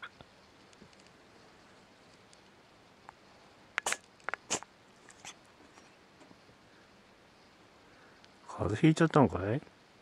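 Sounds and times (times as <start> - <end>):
cat sneezing: 3.8 - 5.4.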